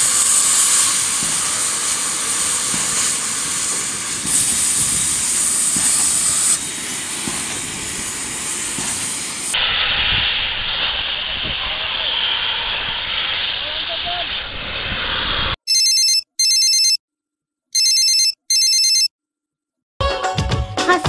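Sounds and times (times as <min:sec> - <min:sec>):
gas cutting torch hissing: 0:00.0 - 0:15.6.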